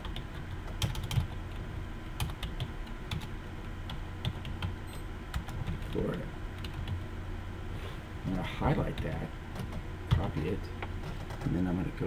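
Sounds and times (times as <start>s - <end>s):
computer keyboard typing: 0.0s - 1.6s, 2.2s - 3.3s, 3.9s - 4.7s, 5.3s - 7.0s, 11.0s - 11.6s.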